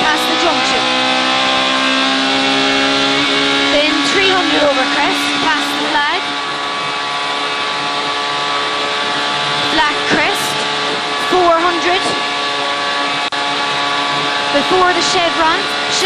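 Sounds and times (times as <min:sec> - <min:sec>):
rally car engine at high revs: 0:00.0 - 0:16.0.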